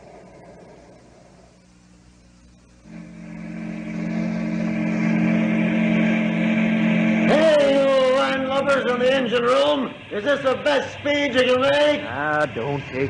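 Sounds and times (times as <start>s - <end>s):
steamboat mechanical drone: 0.0s - 13.0s.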